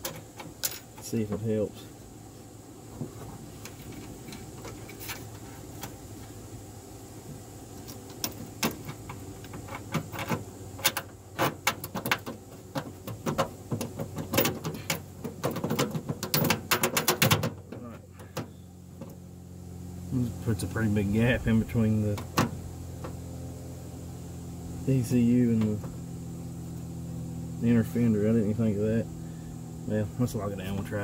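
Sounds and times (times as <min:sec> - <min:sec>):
small metallic clicks and rattles: 0:00.0 - 0:01.4, 0:07.8 - 0:19.2
low steady hum: 0:00.0 - 0:31.0.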